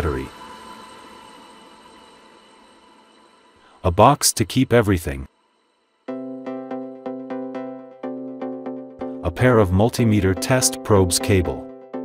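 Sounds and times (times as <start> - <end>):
faint steady tones: 0.0 - 11.6.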